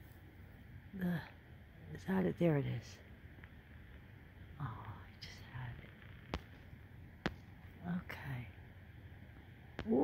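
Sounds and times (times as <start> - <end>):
low steady hiss: 0.0 - 10.0
woman whispering: 1.0 - 1.4, 4.6 - 6.0, 7.8 - 8.6.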